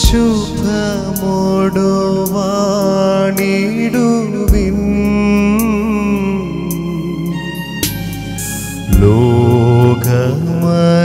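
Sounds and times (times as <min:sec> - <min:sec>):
man singing a slow hymn: 0:00.0 - 0:07.7, 0:08.8 - 0:11.0
keyboard accompaniment: 0:00.0 - 0:11.0.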